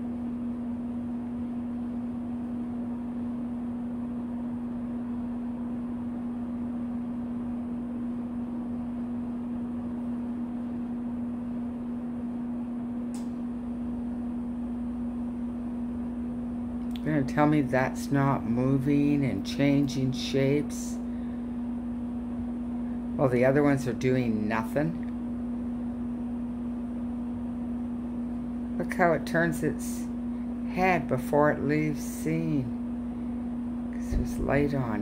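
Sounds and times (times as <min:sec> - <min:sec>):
steady low hum: 0:00.0 - 0:35.0
click: 0:13.1 - 0:13.4, 0:16.8 - 0:17.1.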